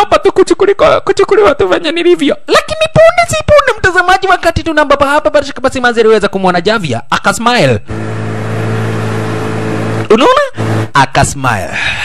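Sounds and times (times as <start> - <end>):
motorboat engine humming: 7.9 - 10.9.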